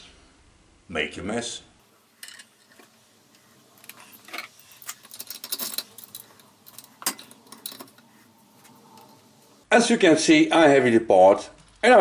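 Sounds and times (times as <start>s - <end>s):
steel parts clinking: 1.9s - 9.6s.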